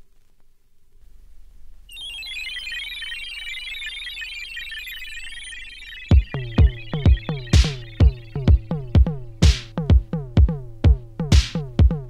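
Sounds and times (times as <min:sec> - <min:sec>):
high-pitched warbling synthesizer: 0:01.9 - 0:09.5.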